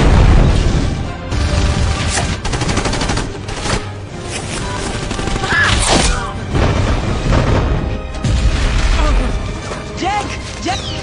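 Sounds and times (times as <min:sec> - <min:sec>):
music: 0:00.0 - 0:11.0
rapid automatic gunfire: 0:01.3 - 0:03.9, 0:04.8 - 0:05.5.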